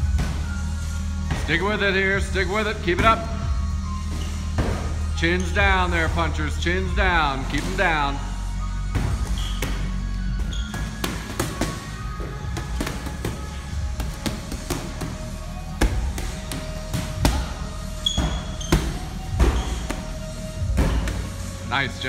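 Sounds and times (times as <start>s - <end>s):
background music with low beat: 0.0s - 22.0s
punches thudding on heavy bags: 12.5s - 17.6s, 18.2s - 21.3s.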